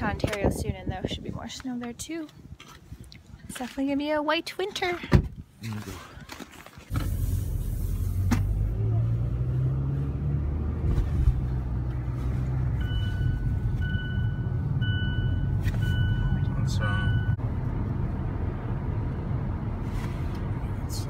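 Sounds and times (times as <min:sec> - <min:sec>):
car cabin road rumble: 0:06.9 - 0:21.0
electronic car beeps: 0:12.8 - 0:17.4.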